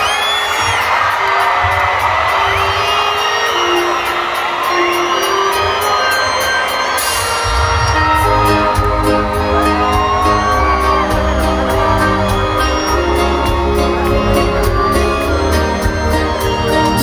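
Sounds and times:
crowd cheering and whooping: 0.0 - 17.0
reggae band playing live: 2.8 - 17.0.

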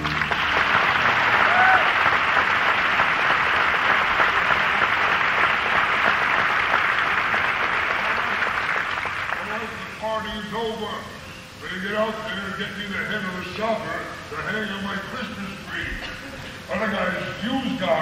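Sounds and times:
audience applauding: 0.0 - 9.9.

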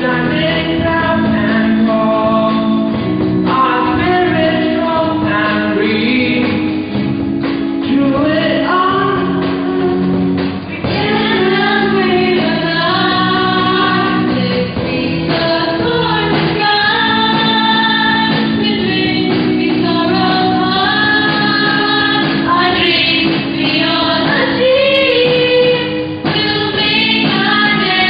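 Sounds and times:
held accompaniment chords: 0.0 - 28.0
students singing into microphones: 10.8 - 28.0.

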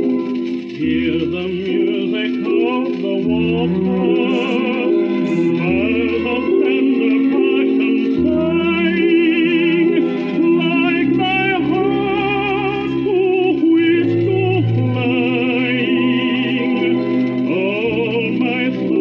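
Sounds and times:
old record of tenor with orchestra: 0.0 - 19.0.

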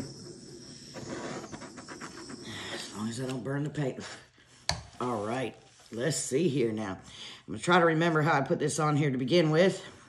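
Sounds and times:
torch flame hissing: 0.0 - 4.2.

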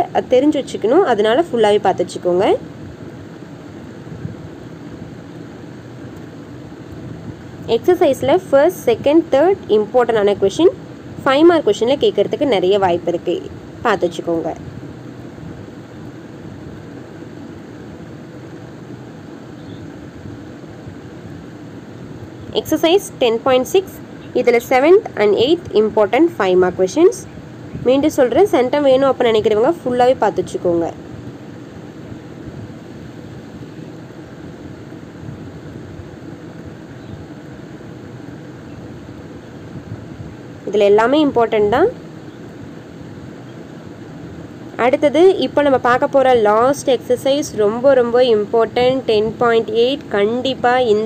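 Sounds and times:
steady hiss: 0.0 - 51.0.

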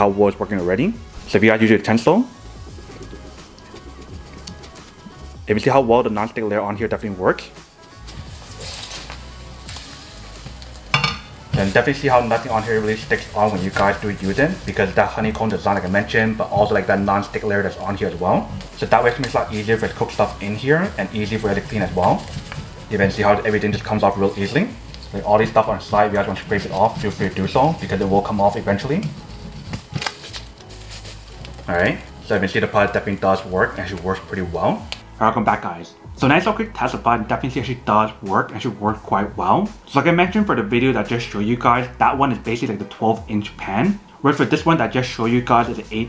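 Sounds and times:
background music: 0.0 - 46.0
egg sizzling in a pan: 2.3 - 5.4, 7.6 - 35.0.

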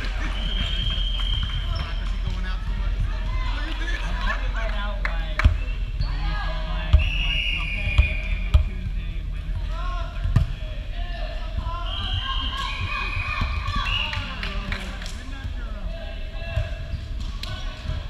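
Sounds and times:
players' voices: 0.0 - 18.0
sneaker squeaks: 0.4 - 2.2.

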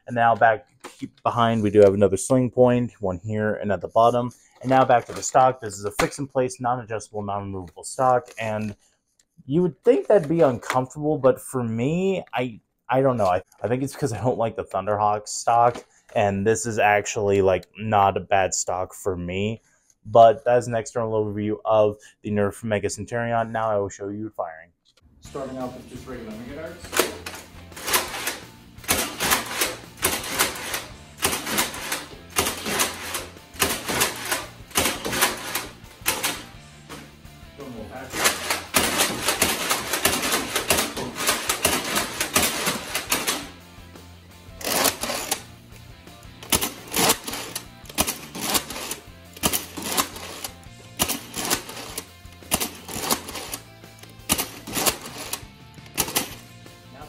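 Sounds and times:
background music with low beat: 25.1 - 57.0.

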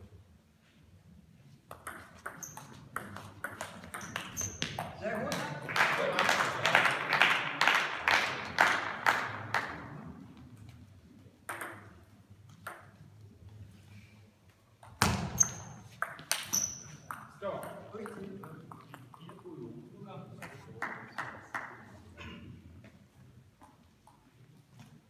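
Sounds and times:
spectators clapping: 5.2 - 10.0, 20.4 - 21.9.

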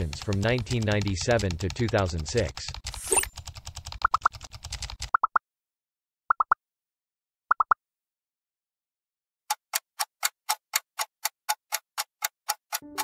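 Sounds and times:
countdown timer ticking: 12.7 - 13.0.

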